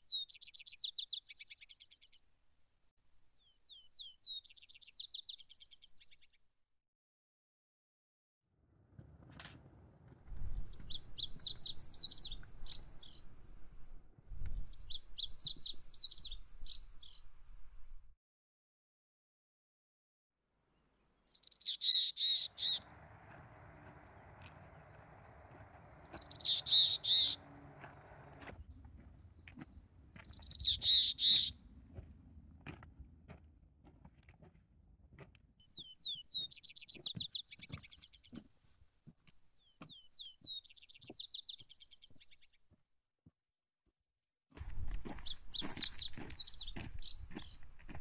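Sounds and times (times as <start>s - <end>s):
birds calling: 10.3s - 13.4s, 14.5s - 17.3s, 21.3s - 31.7s, 35.7s - 38.5s, 44.6s - 48.0s
rapid bird chattering: 21.3s - 22.9s, 25.3s - 27.6s, 30.2s - 31.5s.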